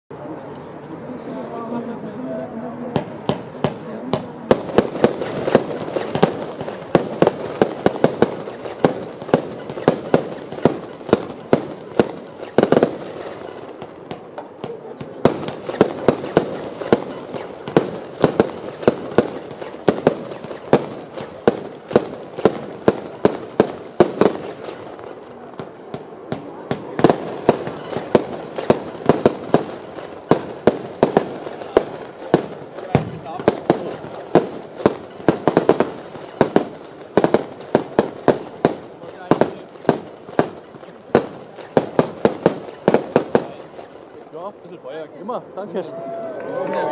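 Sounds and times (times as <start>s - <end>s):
firework cracks and bursts: 3.0s - 45.0s.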